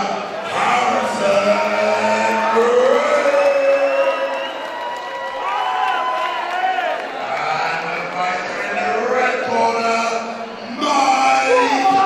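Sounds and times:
man calling over public address: 0:07.3 - 0:12.0.

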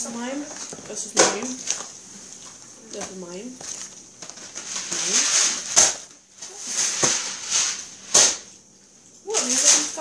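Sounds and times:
plastic bags rustling: 0:00.0 - 0:10.0.

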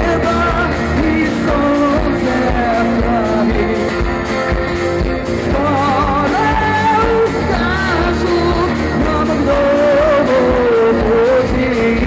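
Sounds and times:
acoustic bass guitar: 0:00.0 - 0:12.0
person singing with vibrato: 0:00.0 - 0:12.0
strummed acoustic guitars: 0:00.0 - 0:12.0.

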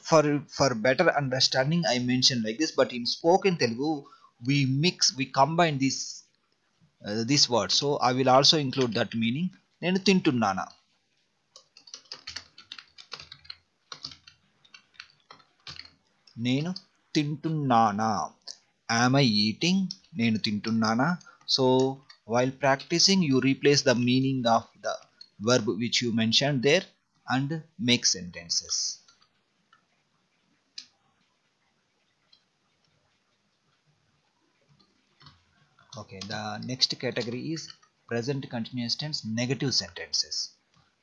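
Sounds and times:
keyboard typing: 0:11.5 - 0:17.0, 0:19.8 - 0:23.6, 0:28.5 - 0:29.8, 0:34.8 - 0:38.4
computer mouse clicks: 0:11.6 - 0:16.9.

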